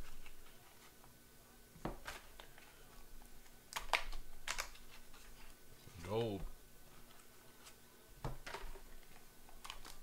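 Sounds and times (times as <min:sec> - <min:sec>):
card wrapper crinkling and clicking: 0:03.7 - 0:05.0, 0:09.6 - 0:10.0.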